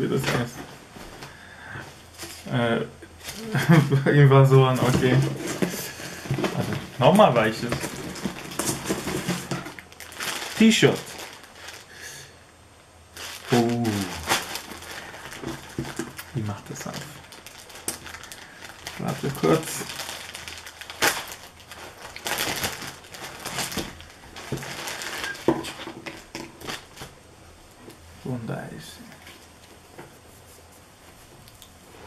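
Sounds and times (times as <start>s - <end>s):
plastic wrapper crinkling: 4.7s - 12.0s, 13.1s - 27.2s.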